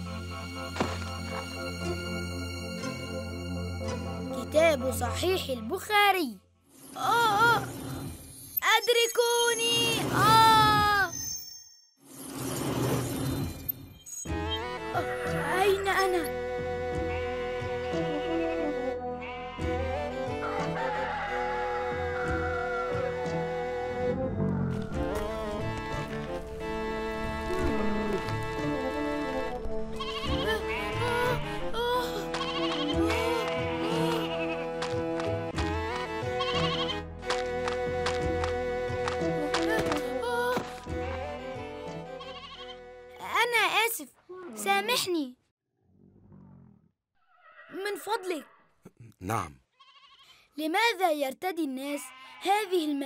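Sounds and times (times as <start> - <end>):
background music: 0.0 - 7.7, 14.2 - 45.2
animal bleating: 14.9 - 15.6, 17.1 - 19.8, 30.0 - 34.8, 36.4 - 37.0, 42.2 - 42.8, 47.3 - 48.7, 49.7 - 50.5, 51.9 - 52.9
rooster crowing: 20.4 - 23.1.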